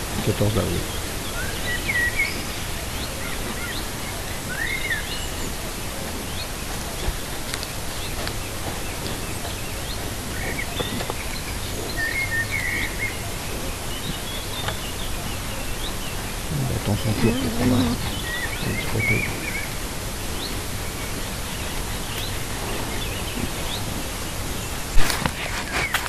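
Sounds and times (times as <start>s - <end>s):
background hiss: 0.0s - 26.0s.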